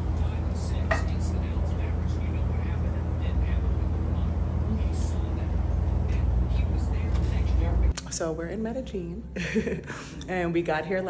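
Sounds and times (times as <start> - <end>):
faint indistinct voices: 0.0 - 7.9
low rumble of background noise: 0.0 - 11.0.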